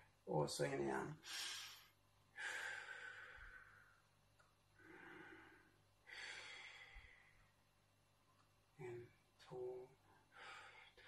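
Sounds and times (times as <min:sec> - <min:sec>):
man breathing slowly: 0:01.2 - 0:04.2, 0:04.8 - 0:07.6, 0:10.2 - 0:11.0.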